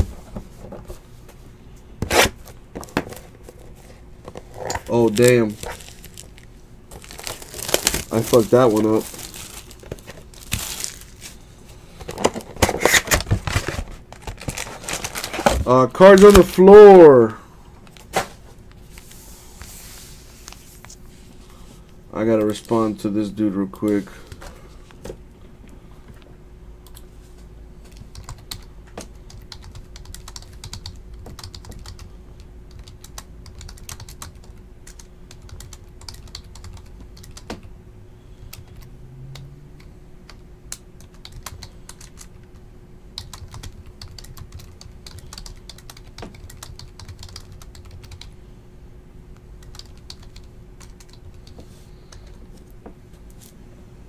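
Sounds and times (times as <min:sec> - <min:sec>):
faint steady hum: 0:00.0 - 0:54.0.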